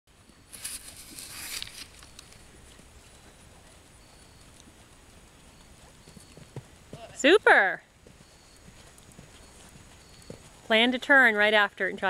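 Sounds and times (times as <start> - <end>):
rustling: 0.4 - 6.7
hoofbeats on sand: 2.2 - 11.4.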